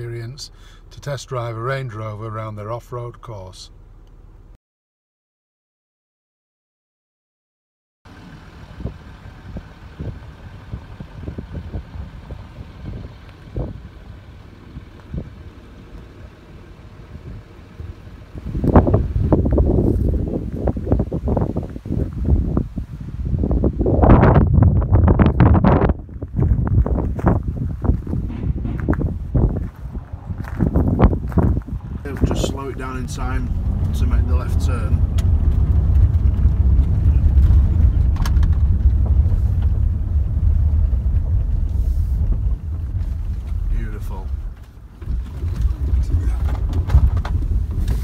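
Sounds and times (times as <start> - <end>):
wind buffeting microphone: 8.6 - 48.0.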